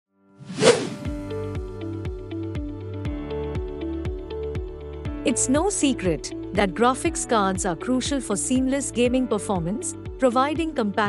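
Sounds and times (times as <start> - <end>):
whoosh sound effect: 0.5 - 1.2
background music with steady beat: 1.0 - 11.0.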